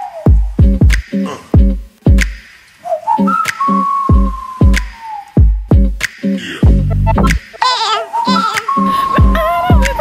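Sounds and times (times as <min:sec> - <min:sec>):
whistle-like lead melody: 0:00.0 - 0:01.2, 0:02.4 - 0:06.4, 0:08.0 - 0:10.0
booming kick drums: 0:06.6 - 0:06.9.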